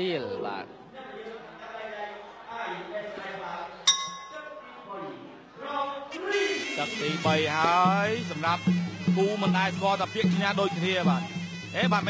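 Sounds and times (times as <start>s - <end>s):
boxing bell ringing: 3.9s - 4.6s.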